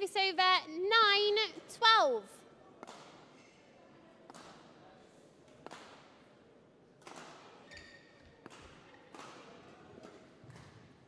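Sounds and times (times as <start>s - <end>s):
shoe squeak on court floor: 7.7s - 8.2s
rackets hitting shuttlecock: 8.4s - 10.7s.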